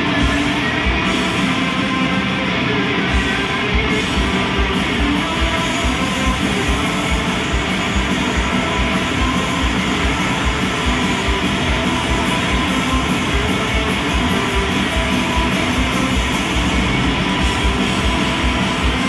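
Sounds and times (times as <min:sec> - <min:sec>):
distorted electric guitars: 0:00.0 - 0:19.0
fast drum beat: 0:00.0 - 0:19.0.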